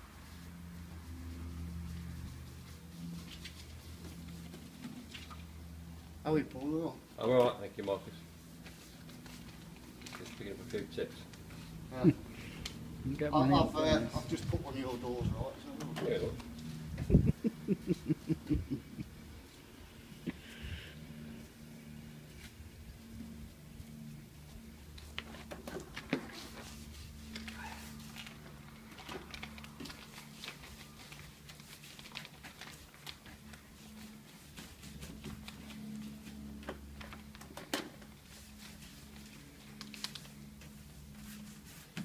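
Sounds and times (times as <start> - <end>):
paintbrush brushing: 0.0 - 5.5, 38.2 - 42.0.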